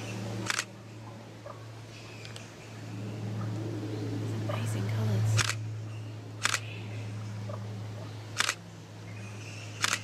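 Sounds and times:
steady low hum: 0:00.0 - 0:10.0
camera shutter clicks: 0:00.4 - 0:00.7, 0:05.4 - 0:05.6, 0:06.4 - 0:06.7, 0:08.4 - 0:08.6, 0:09.8 - 0:10.0.

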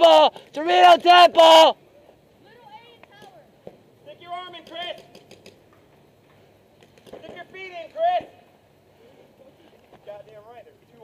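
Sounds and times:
distant paintball markers popping: 0:04.6 - 0:05.8, 0:06.8 - 0:07.4.

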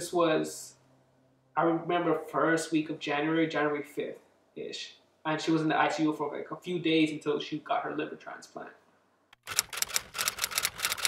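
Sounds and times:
typewriter keys clacking: 0:09.4 - 0:11.0.

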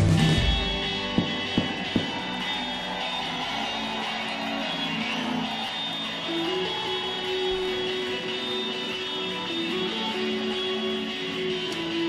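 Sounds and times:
electric guitars ringing notes: 0:04.8 - 0:12.0.

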